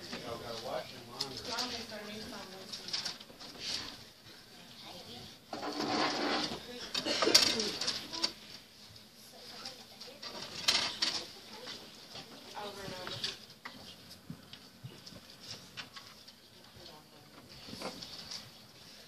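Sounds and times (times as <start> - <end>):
people talking quietly: 6.2 - 19.0.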